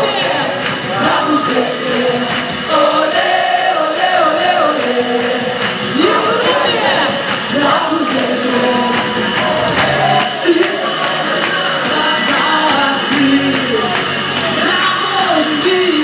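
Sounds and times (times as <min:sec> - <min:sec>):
amplified backing music: 0:00.0 - 0:16.0
vocalists singing worship song: 0:00.0 - 0:16.0.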